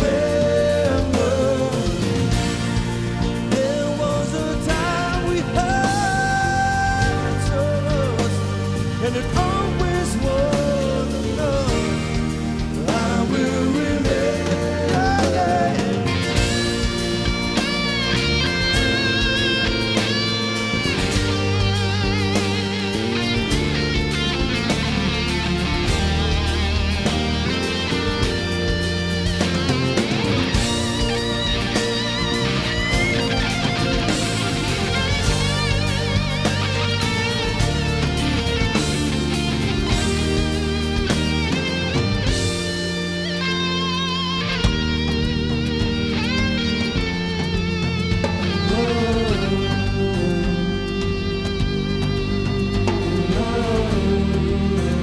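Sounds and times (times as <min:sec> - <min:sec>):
drums: 0:00.0 - 0:55.0
electric guitar solo: 0:00.0 - 0:55.0
sustained bass notes: 0:00.0 - 0:55.0.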